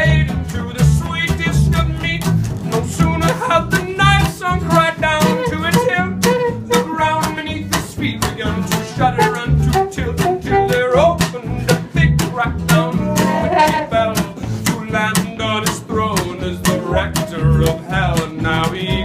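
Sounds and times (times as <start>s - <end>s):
acoustic guitar strumming: 0.0s - 19.0s
man singing: 0.0s - 19.0s
trumpet: 5.2s - 7.2s, 9.0s - 11.1s, 13.0s - 14.2s.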